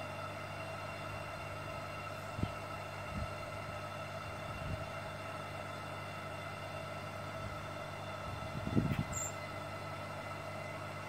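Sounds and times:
air pump humming: 0:07.2 - 0:09.7.

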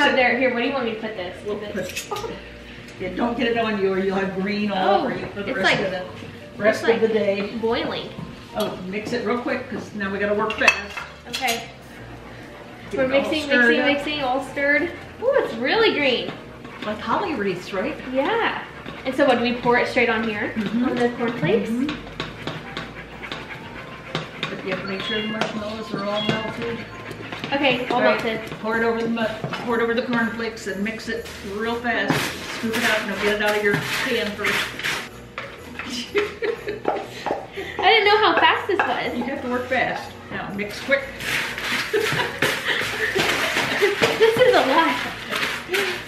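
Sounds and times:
wooden spoon stirring in saucepan: 0:15.8 - 0:35.5, 0:40.7 - 0:46.0
wooden spoon stirring cereal: 0:30.9 - 0:35.1, 0:40.8 - 0:46.0
person laughing: 0:35.9 - 0:37.8, 0:41.7 - 0:44.0.

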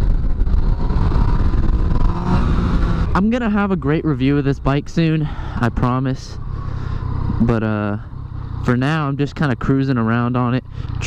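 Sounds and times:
wind rush on microphone: 0:00.0 - 0:03.2
motorcycle engine under throttle: 0:00.0 - 0:11.0.

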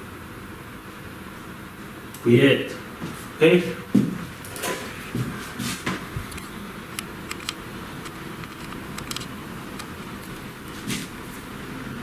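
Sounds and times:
low steady hum: 0:00.0 - 0:12.0
handling noises: 0:04.0 - 0:06.5.

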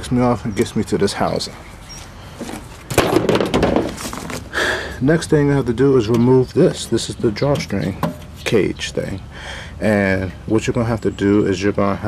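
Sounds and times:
objects rattling and rustling: 0:02.3 - 0:04.6.

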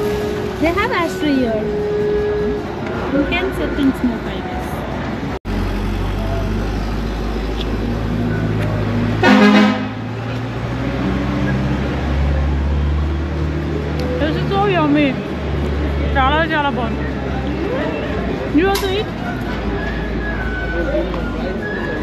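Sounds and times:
street traffic rumble: 0:00.0 - 0:22.0
car horn honk: 0:09.2 - 0:10.2.

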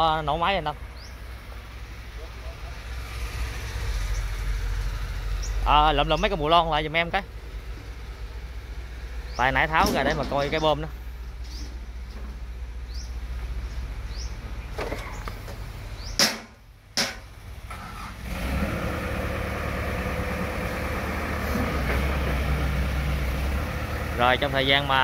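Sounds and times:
excavator diesel engine idling: 0:00.0 - 0:18.1, 0:18.8 - 0:25.0.

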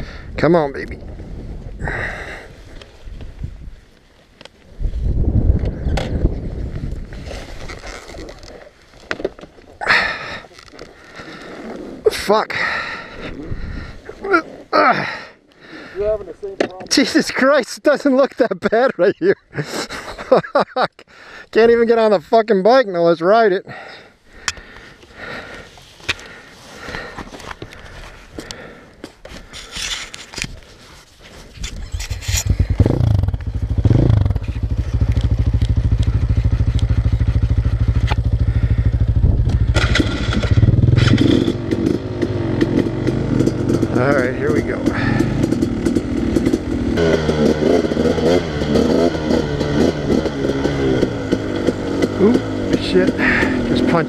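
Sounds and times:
dirt bike engine: 0:00.0 - 0:02.5, 0:05.1 - 0:16.9, 0:31.8 - 0:54.0.

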